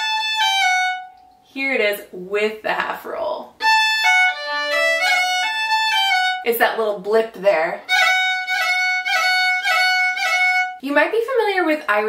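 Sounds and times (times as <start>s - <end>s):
fiddle with grace notes: 0.0s - 1.3s, 3.6s - 6.5s, 7.8s - 10.8s
woman speaking: 1.5s - 3.5s, 6.4s - 7.9s, 10.8s - 12.0s.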